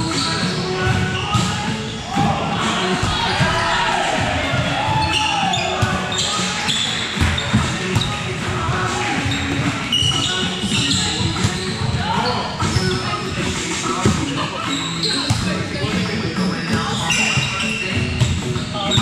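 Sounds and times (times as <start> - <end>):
players' voices: 0.0 - 19.0.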